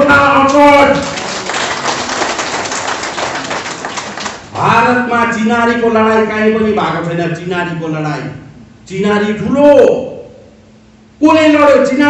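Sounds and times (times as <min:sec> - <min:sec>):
crowd applauding: 0:00.4 - 0:04.6.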